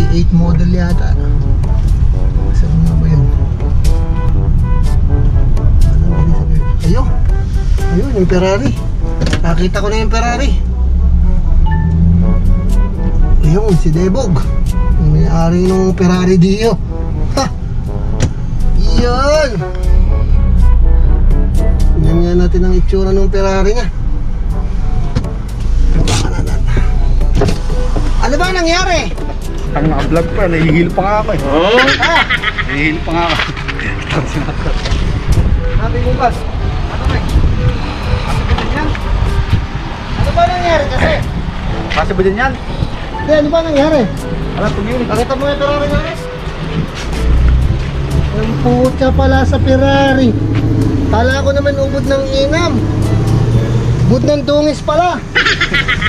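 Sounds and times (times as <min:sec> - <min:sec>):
man speaking: 0:28.2 - 0:34.6, 0:48.2 - 0:50.5.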